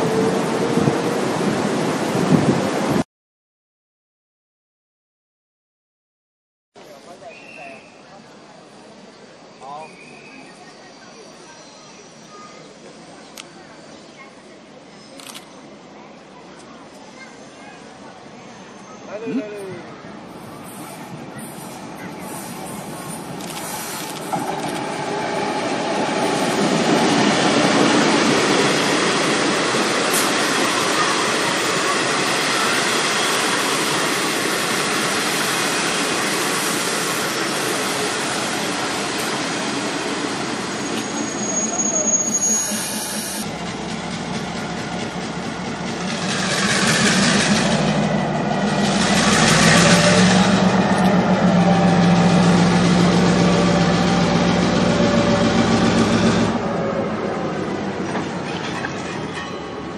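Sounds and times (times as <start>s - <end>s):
train wheels rolling on rails: 19.8s - 59.9s
locomotive engine running: 43.4s - 59.2s.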